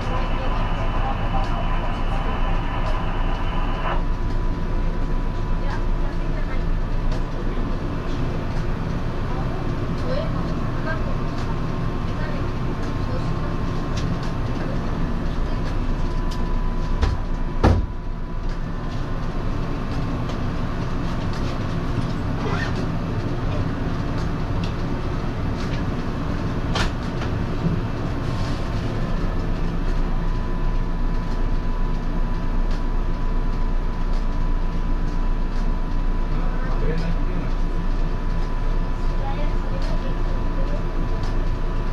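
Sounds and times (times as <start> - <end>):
train equipment hum: 0.0 - 41.9.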